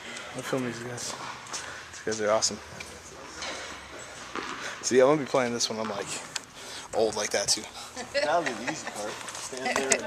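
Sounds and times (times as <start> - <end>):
man speaking: 0.3 - 1.2, 4.8 - 10.0.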